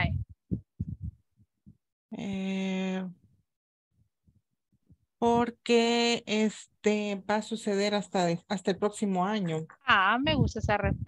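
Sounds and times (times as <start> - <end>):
person speaking over video call: 0.0 - 1.1, 2.1 - 3.3, 5.2 - 11.0.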